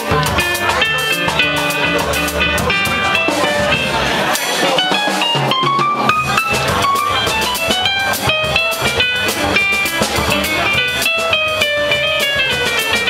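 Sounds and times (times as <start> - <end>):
low bass line: 0.0 - 4.3, 6.1 - 13.0
percussion: 0.0 - 13.0.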